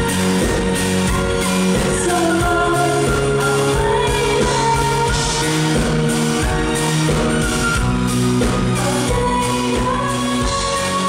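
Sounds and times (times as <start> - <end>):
woman singing into a microphone: 0.0 - 6.6, 8.4 - 11.0
live pop band: 0.0 - 11.0.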